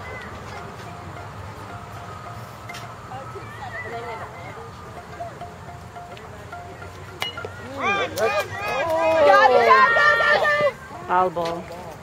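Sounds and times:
bat hitting ball ping: 7.2 - 7.6
spectators shouting and cheering: 7.3 - 11.3.

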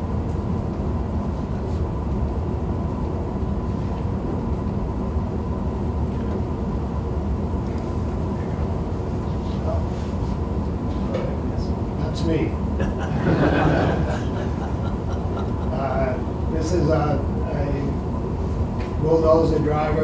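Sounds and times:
faint steady hum: 0.0 - 20.0
low room rumble: 0.0 - 20.0.

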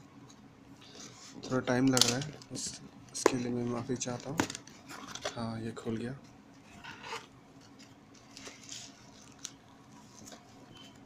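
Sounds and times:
plastic wrap and cardboard rustling: 6.7 - 11.0.

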